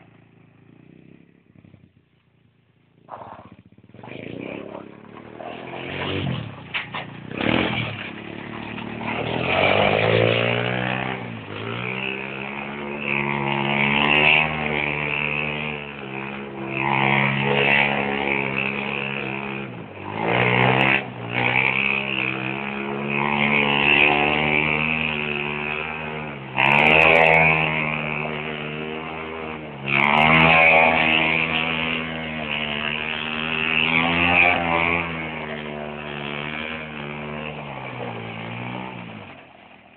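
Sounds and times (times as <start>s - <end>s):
go-kart engine revving: 0.0s - 39.9s.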